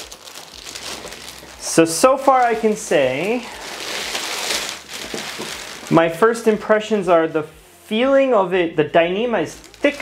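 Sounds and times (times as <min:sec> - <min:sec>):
plastic bag crinkling and rustling: 0:00.0 - 0:06.3, 0:09.4 - 0:10.0.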